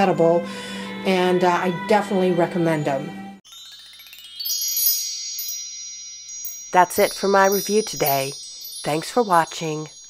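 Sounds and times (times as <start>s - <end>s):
chime glissando: 3.4s - 10.0s.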